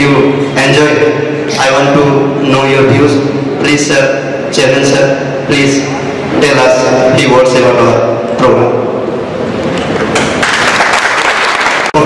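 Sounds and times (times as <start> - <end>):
audience applauding: 10.1 - 12.0.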